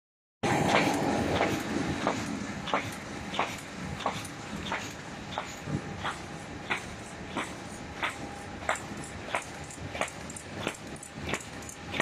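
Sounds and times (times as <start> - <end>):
machine clacking: 0.5 - 12.0.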